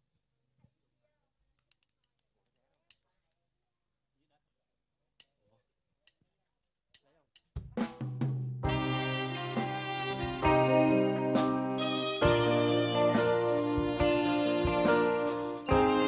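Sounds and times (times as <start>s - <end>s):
live band playing with drums: 7.6s - 16.0s.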